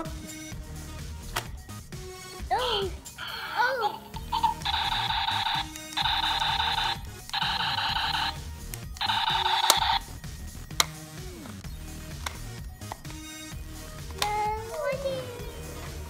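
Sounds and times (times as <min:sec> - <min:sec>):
toy beeping and buzzing bursts: 0:03.2 - 0:10.1
sharp clicks: 0:04.2 - 0:10.1, 0:10.7 - 0:13.3.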